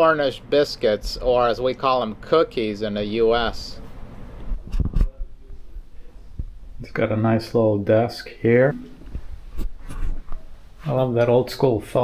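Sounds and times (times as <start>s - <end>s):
man speaking: 0.0s - 3.8s, 6.8s - 9.0s, 10.8s - 12.0s.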